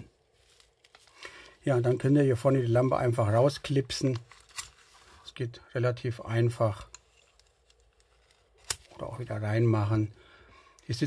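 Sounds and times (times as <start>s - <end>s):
faint handling: 0.0s - 2.4s.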